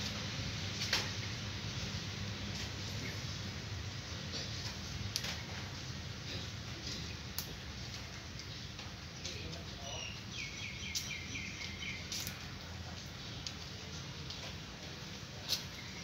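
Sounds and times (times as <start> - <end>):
bird chirping: 9.8 - 12.3.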